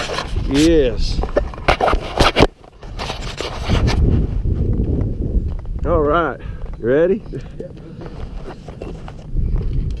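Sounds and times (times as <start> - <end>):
camera scraping against clothing: 0.0 - 5.0, 7.2 - 10.0.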